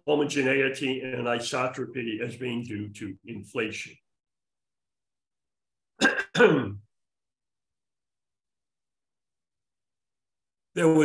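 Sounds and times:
man clearing his throat: 0:06.0 - 0:06.8.

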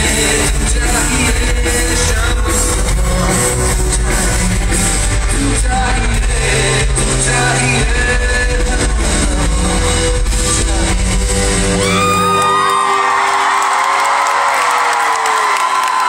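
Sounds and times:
live pop band music: 0:00.0 - 0:13.6
audience cheering and screaming: 0:10.3 - 0:16.0.

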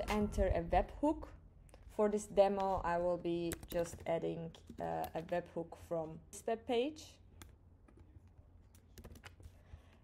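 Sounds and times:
computer keys clicking: 0:03.5 - 0:05.3.

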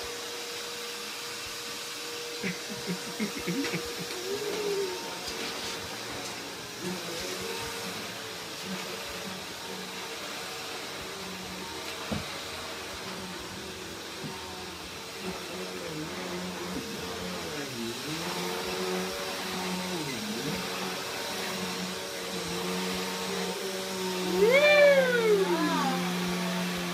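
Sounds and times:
appliance motor humming: 0:01.6 - 0:08.4, 0:10.7 - 0:26.9
person calling out: 0:02.4 - 0:05.2, 0:24.2 - 0:26.7.

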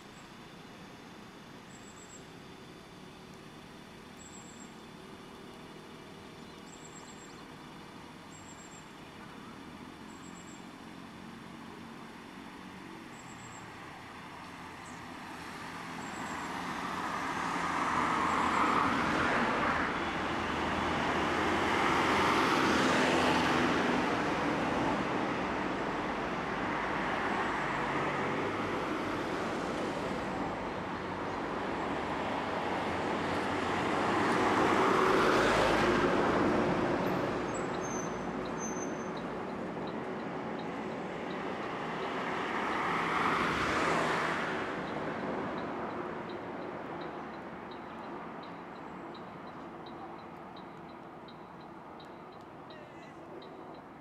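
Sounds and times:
vehicles passing: 0:00.0 - 0:54.0.

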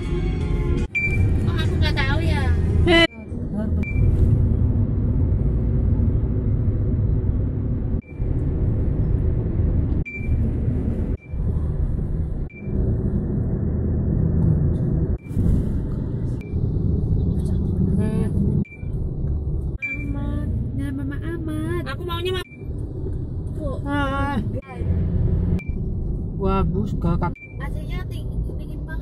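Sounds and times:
car road and engine noise: 0:00.0 - 0:29.0.

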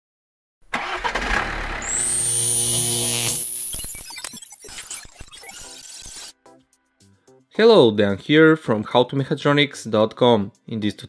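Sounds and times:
high rising whine: 0:01.8 - 0:03.8.

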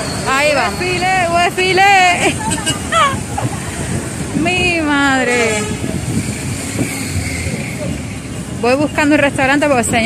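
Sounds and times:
cars passing on busy street: 0:00.0 - 0:10.0.

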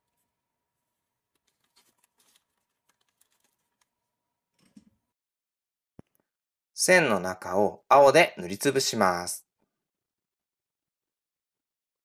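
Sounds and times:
paper ticks and rustles: 0:01.3 - 0:04.0.

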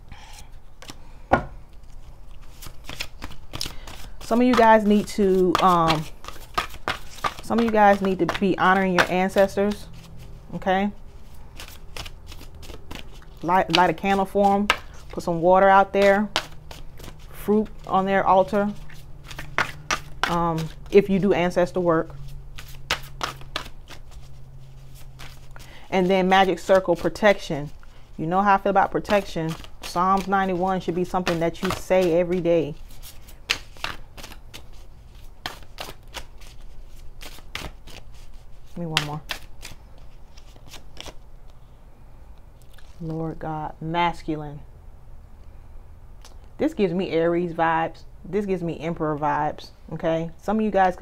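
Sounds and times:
steady low hum: 0:00.0 - 0:51.0
card tapping on table: 0:01.3 - 0:01.6
cards snapping and rustling: 0:01.7 - 0:10.4, 0:11.4 - 0:18.0, 0:18.6 - 0:20.9, 0:22.6 - 0:25.8, 0:29.0 - 0:41.6.

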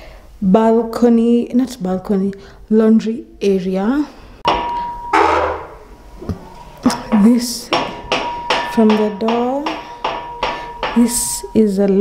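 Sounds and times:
metal bolt sliding with clank: 0:04.6 - 0:05.8
door scraping open: 0:05.1 - 0:06.8.

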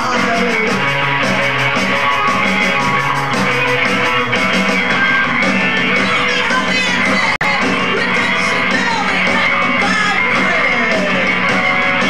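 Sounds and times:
bass guitar: 0:00.0 - 0:12.0
electric guitar: 0:00.0 - 0:12.0
fast drum beat: 0:00.0 - 0:12.0.

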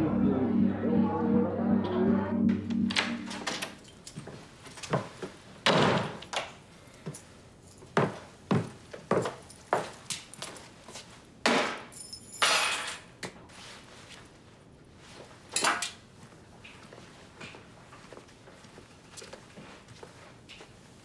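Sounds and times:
footsteps on hard floor: 0:02.5 - 0:05.4, 0:07.8 - 0:11.1, 0:16.2 - 0:21.0.

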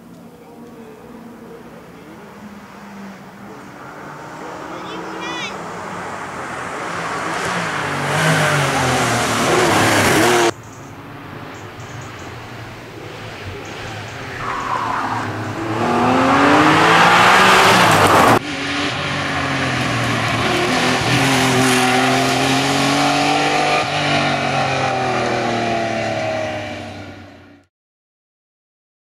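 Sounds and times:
gear change: 0:00.0 - 0:18.4
racing car engine: 0:00.0 - 0:27.6.

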